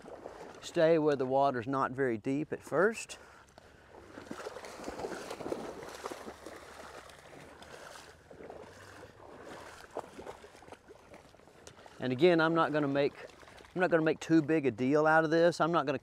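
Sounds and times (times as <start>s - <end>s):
feet splashing through water: 0.0s - 0.8s, 3.2s - 14.2s.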